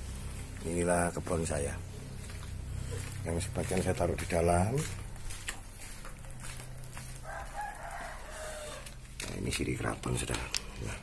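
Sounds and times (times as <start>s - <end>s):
rooster crowing: 6.4s - 9.0s.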